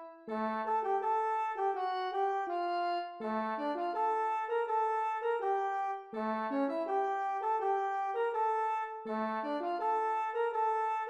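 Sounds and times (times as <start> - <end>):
synthetic harmonized melody: 0.0 - 11.0.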